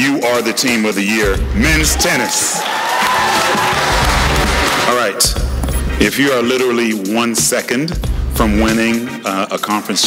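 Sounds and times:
background music with bass beat: 0:00.0 - 0:02.3, 0:03.0 - 0:10.0
audience applauding and cheering: 0:01.4 - 0:05.2.

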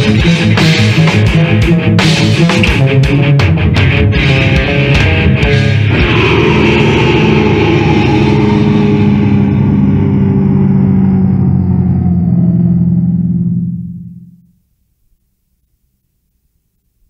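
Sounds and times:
distorted metal guitar chord ringing: 0:00.0 - 0:14.6.

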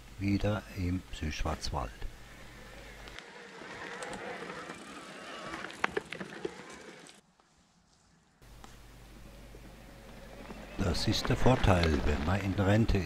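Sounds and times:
bike tyres crunching on dirt: 0:02.2 - 0:13.0
bike clicks and knocks: 0:03.9 - 0:07.2.

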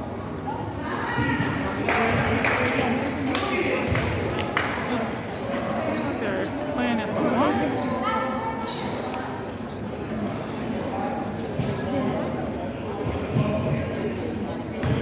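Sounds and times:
sneaker squeaks: 0:04.4 - 0:09.5, 0:10.1 - 0:15.0.

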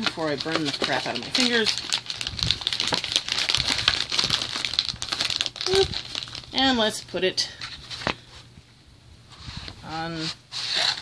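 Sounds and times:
plastic bag crinkling: 0:00.0 - 0:08.2.

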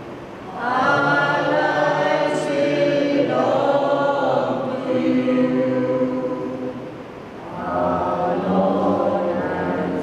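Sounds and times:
slow hymn sung in long notes: 0:00.3 - 0:10.0.

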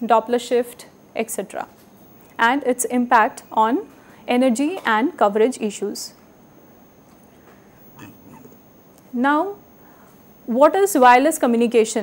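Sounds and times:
faint room hiss: 0:00.0 - 0:12.0
steady high-pitched whine: 0:00.0 - 0:12.0.

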